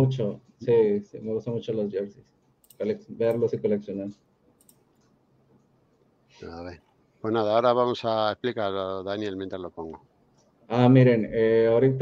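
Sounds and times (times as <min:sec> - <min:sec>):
person speaking: 0:00.0 - 0:04.3, 0:06.3 - 0:12.0.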